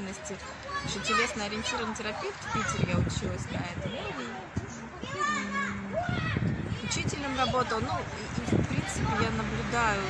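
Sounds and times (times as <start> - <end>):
children's voices: 0.0 - 10.0
low voices: 0.0 - 10.0
child's high-pitched call: 5.0 - 7.0.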